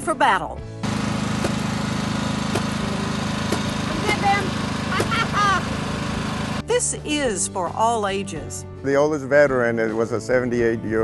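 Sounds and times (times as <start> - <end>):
small engine running: 0.8 - 6.8
sharp pops: 1.4 - 1.7, 2.5 - 2.8, 3.5 - 4.4.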